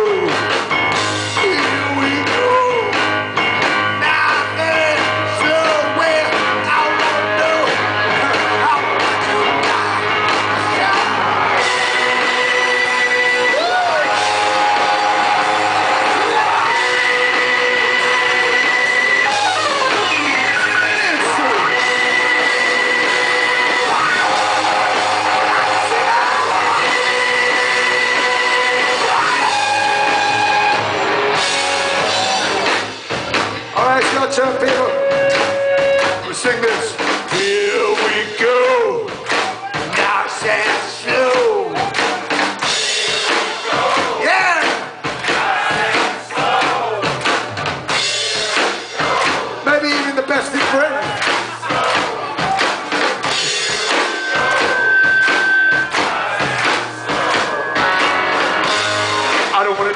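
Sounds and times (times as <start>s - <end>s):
live rock band playing: 0.0s - 59.9s
held high notes with pitch bends: 53.3s - 59.4s.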